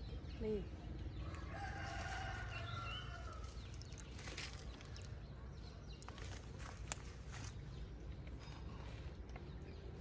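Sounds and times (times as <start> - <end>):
rooster crowing: 1.2 - 3.5.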